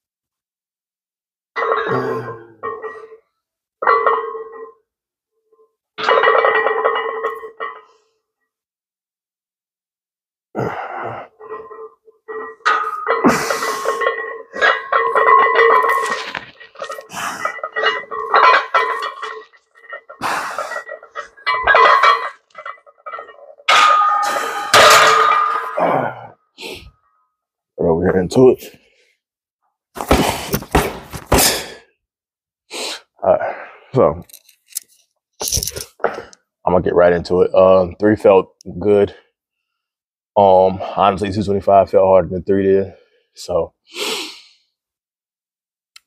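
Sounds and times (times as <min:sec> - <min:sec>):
man grunting and straining: 0:01.8 - 0:02.6, 0:10.5 - 0:11.4, 0:13.2 - 0:14.0, 0:20.2 - 0:20.8, 0:25.7 - 0:26.9, 0:31.3 - 0:31.9.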